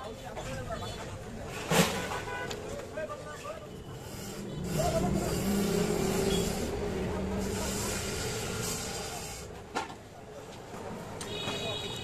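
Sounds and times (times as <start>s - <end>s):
street noise: 0.0s - 12.0s.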